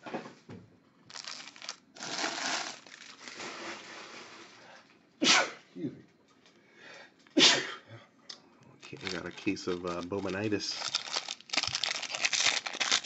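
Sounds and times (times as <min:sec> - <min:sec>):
foil packs rustling and crinkling: 0:01.1 - 0:04.6, 0:08.8 - 0:13.0
person sneezing: 0:05.2 - 0:05.7, 0:07.4 - 0:07.9.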